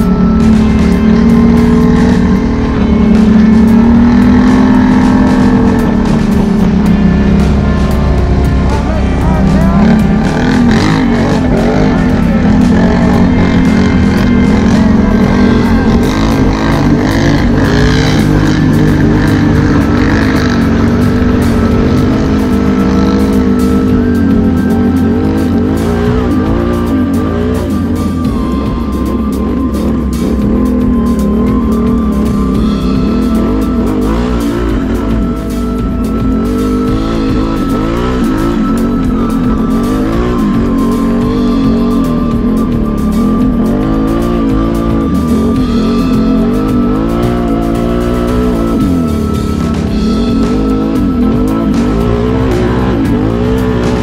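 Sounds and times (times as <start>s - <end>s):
atv engine revving: 0.0s - 54.0s.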